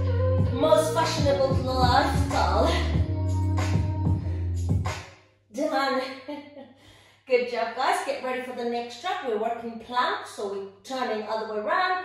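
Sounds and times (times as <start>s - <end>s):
beat-driven workout music: 0.0s - 5.2s
woman's voice: 0.5s - 2.9s, 5.5s - 6.7s, 7.3s - 12.0s.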